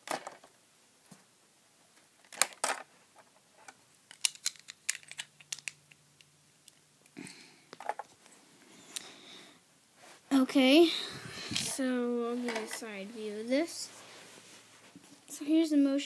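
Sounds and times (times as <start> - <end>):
plastic bricks clicking: 4.1 - 6.8.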